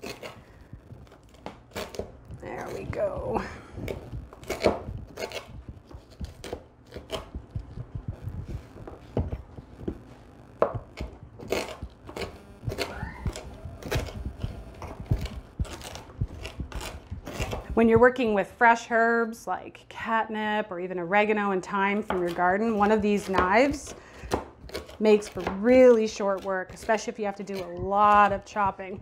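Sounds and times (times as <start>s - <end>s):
knife chopping on wooden board: 3.8s - 10.0s, 10.6s - 18.2s, 22.0s - 29.0s.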